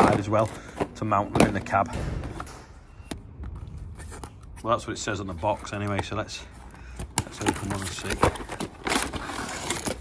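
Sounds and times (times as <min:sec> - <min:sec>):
cardboard boxes being handled: 0:03.8 - 0:10.0.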